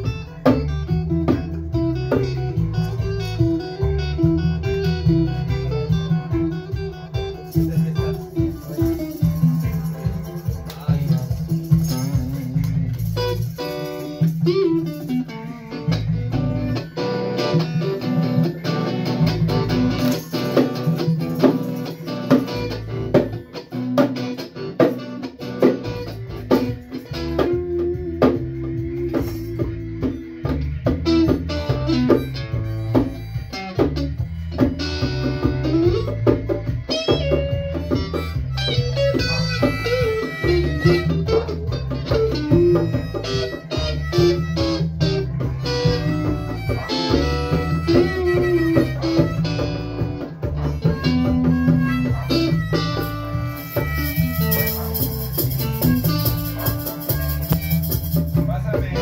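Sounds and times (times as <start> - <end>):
drums keeping the beat: 0.0 - 59.0
plucked guitar: 0.0 - 59.0
steady bass line: 0.0 - 59.0.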